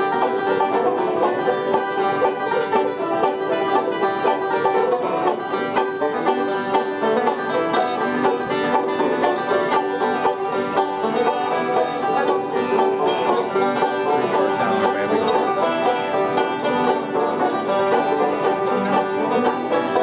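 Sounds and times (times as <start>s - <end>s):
banjos picking bluegrass: 0.0s - 20.0s.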